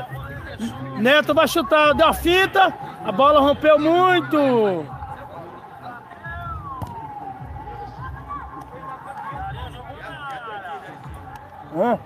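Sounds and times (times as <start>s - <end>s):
distant shouts and chatter: 0.0s - 12.0s.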